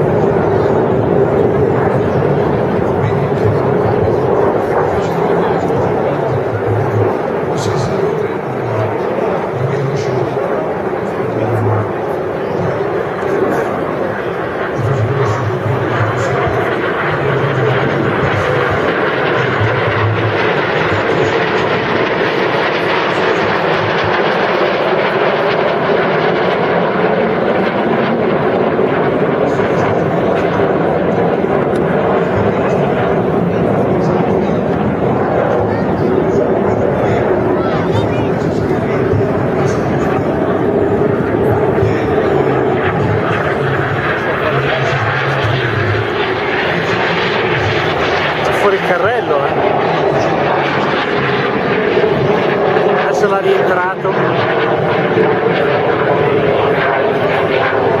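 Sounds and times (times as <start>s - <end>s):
jet engines flying overhead: 0.0s - 58.0s
voices in background: 0.0s - 58.0s.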